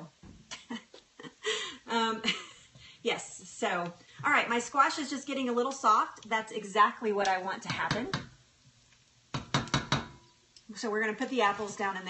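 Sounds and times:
kitchenware knocking together: 9.4 - 10.3.

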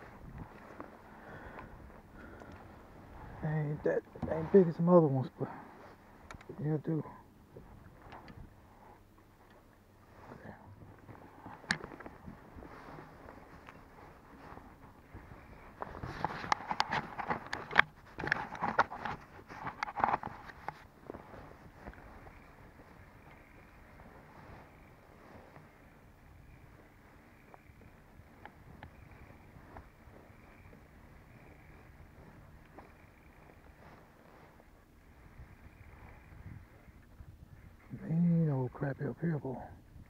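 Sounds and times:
fishing gear rustling and clattering: 7.4 - 37.8.

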